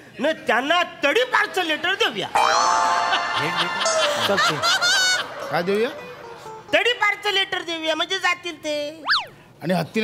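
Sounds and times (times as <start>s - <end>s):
comic music cue: 2.4s - 6.7s.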